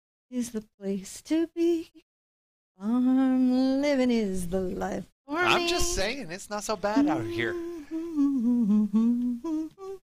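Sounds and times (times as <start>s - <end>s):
person humming a tune: 7.0s - 10.0s.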